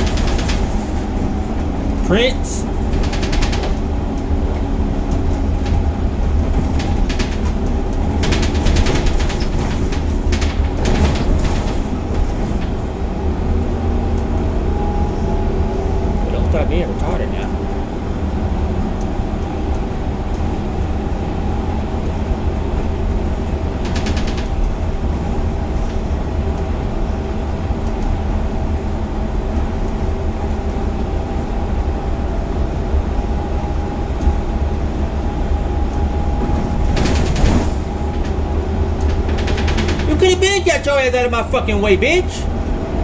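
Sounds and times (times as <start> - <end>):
bus deep rumble: 0.0 - 43.0.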